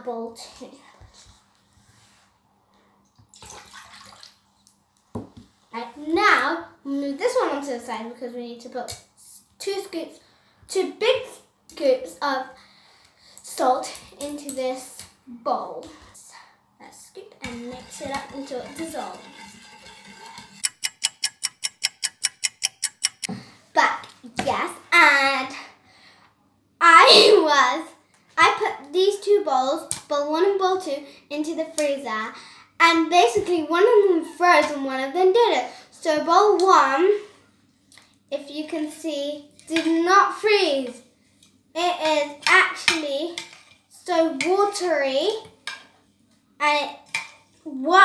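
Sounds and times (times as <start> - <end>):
child's voice: 0.0 - 1.1, 5.8 - 12.6, 13.5 - 19.2, 23.8 - 25.8, 26.8 - 37.3, 38.3 - 41.0, 41.8 - 43.4, 44.0 - 45.5, 46.6 - 48.0
water pouring into a bowl: 3.4 - 4.4
spoon tapping plastic bowl: 17.5 - 23.3.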